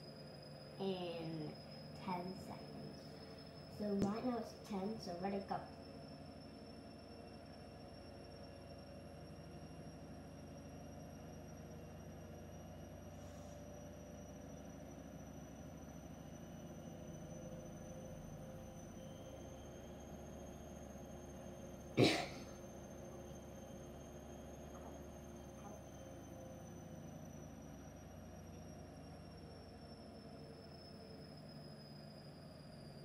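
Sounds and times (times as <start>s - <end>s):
high-pitched whines: 0.0s - 33.0s
low hum: 0.0s - 33.0s.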